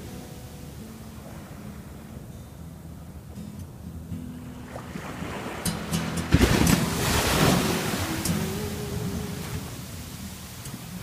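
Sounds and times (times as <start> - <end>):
ocean wave breaking on sand: 4.5 - 11.0.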